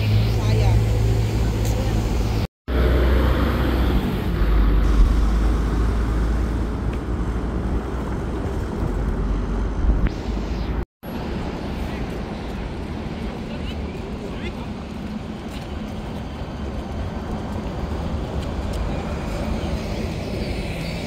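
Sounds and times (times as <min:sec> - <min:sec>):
vehicles driving past: 0:00.0 - 0:21.0.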